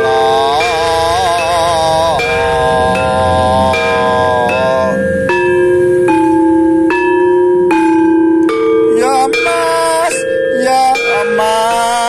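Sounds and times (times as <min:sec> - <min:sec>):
gamelan metallophones ringing: 0:00.0 - 0:12.0.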